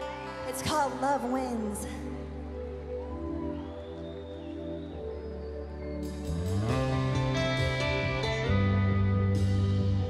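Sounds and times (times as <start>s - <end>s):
soft sustained chords over bass: 6.0s - 10.0s.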